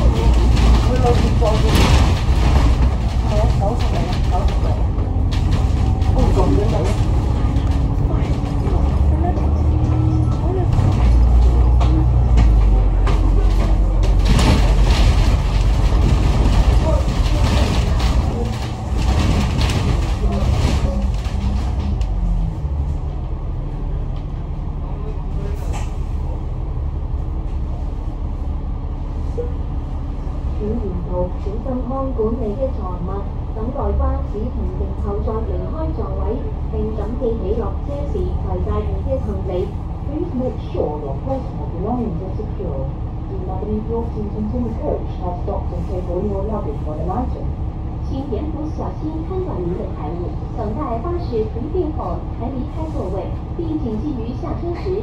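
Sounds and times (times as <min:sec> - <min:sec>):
bus body rattling: 0:00.0 - 0:55.0
bus engine running: 0:00.0 - 0:55.0.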